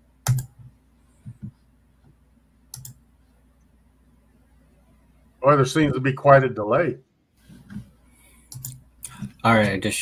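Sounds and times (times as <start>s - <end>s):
computer keyboard clicks: 0.2s - 0.6s, 2.7s - 3.0s, 8.5s - 9.2s.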